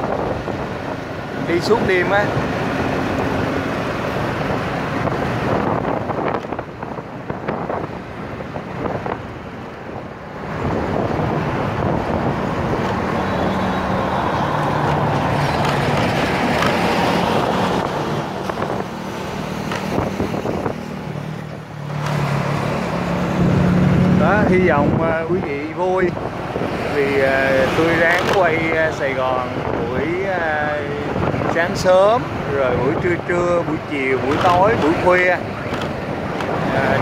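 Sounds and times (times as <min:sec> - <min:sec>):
vehicle road and engine noise: 0:00.0 - 0:37.0
wind rushing over microphone: 0:00.0 - 0:37.0.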